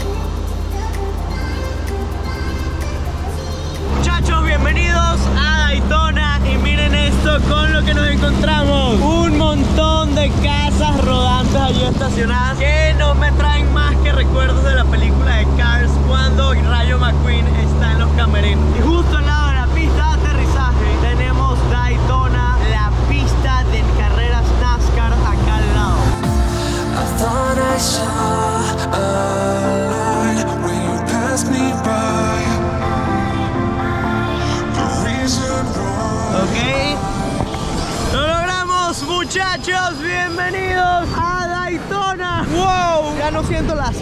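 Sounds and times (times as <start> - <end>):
propeller plane engine drone: 0.0 - 27.4
man talking loudly: 3.9 - 26.3, 38.1 - 44.0.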